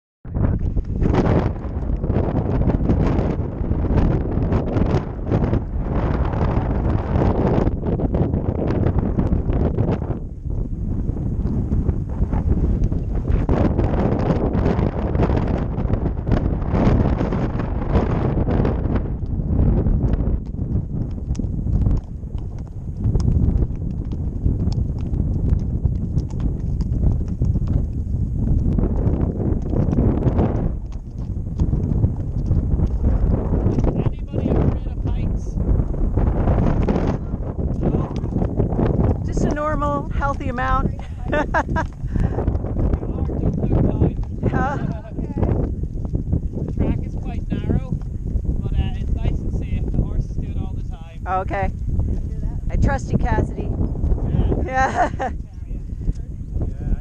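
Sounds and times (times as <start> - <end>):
wind noise on microphone: 0.2 - 57.0
horse hooves clopping on stony track: 0.4 - 57.0.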